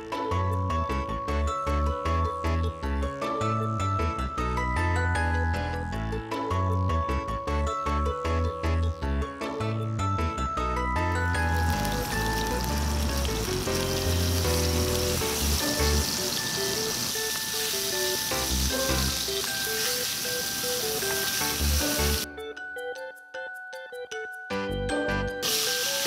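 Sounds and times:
background music with bass line: 0.0s - 16.1s
meat patties sizzling in a pan: 11.5s - 22.2s, 25.4s - 26.0s.

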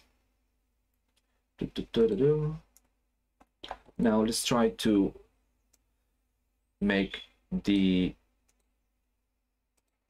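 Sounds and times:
person speaking: 1.6s - 2.8s, 6.8s - 8.3s
computer mouse clicks: 2.7s - 4.0s, 7.7s - 8.7s, 9.7s - 10.0s.

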